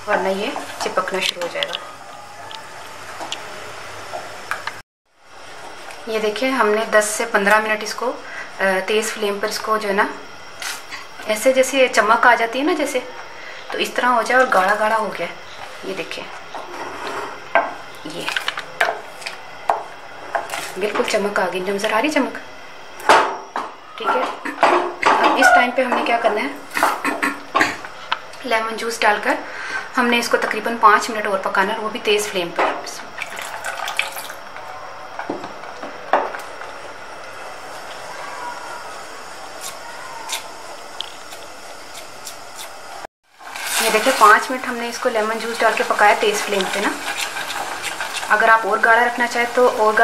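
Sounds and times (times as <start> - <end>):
jam cooking and stirred: 0.0 - 4.8, 13.8 - 21.3, 32.2 - 50.0
juice pouring into saucepan: 33.2 - 34.4, 43.4 - 48.4.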